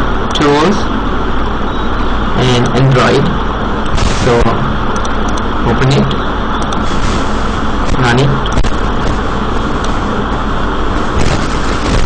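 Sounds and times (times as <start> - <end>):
steady hiss: 3.9 - 4.8, 6.7 - 12.0.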